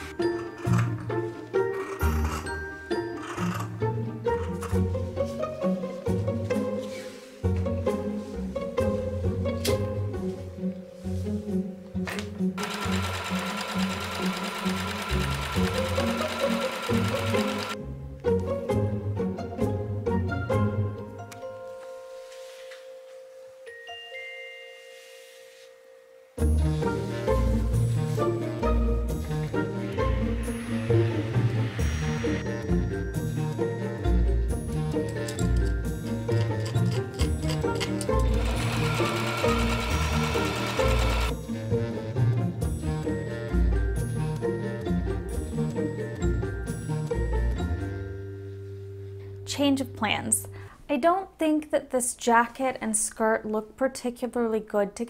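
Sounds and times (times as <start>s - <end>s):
background music: 0.0s - 52.4s
sewing machine stitching: 1.6s - 3.8s, 12.6s - 17.8s, 36.4s - 41.4s.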